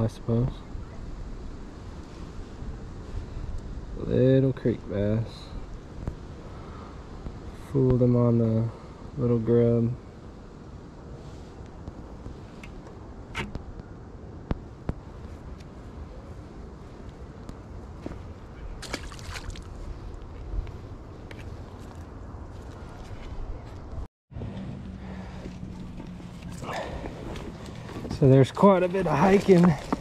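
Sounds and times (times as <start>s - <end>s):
steady low rumble: 0.0s - 30.0s
fish splashing into water: 18.8s - 19.7s.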